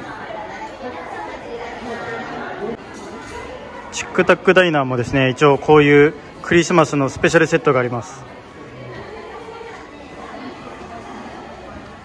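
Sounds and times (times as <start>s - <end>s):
crowd chatter in echoing hall: 0.0s - 12.0s.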